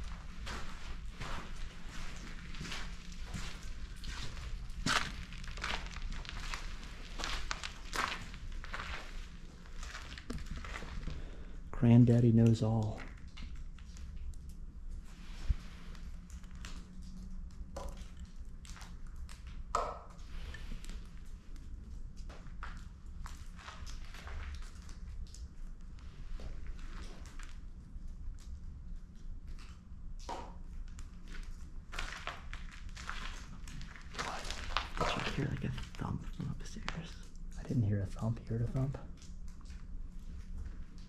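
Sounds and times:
footsteps on rubble: 0.0 - 11.6, 30.3 - 41.0
water dripping: 0.0 - 41.0.

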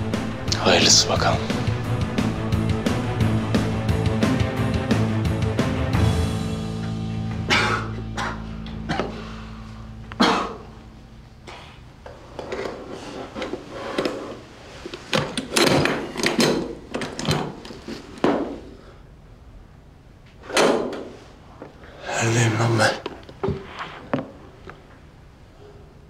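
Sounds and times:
soundtrack music: 0.0 - 11.2.

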